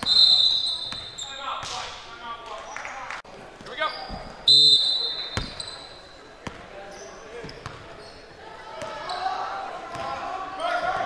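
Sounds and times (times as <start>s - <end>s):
referee's whistle: 0.0s - 1.5s, 3.9s - 6.2s
gym voices: 0.0s - 11.0s.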